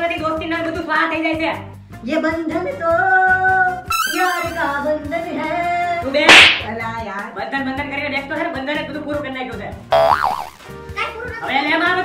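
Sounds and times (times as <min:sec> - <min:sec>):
background music with singing: 0:00.0 - 0:09.9
comic boing sound effect: 0:10.0 - 0:10.6.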